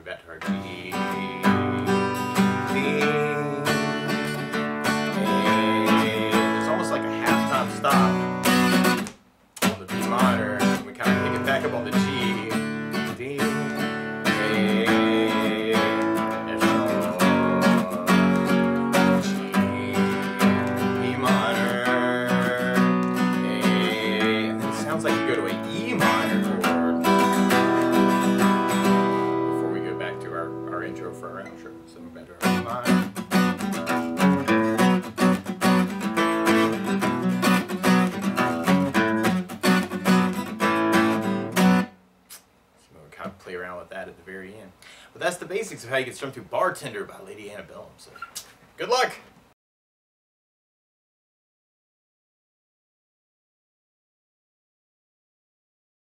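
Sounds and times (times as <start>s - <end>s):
acoustic guitar strumming: 0.4s - 42.0s.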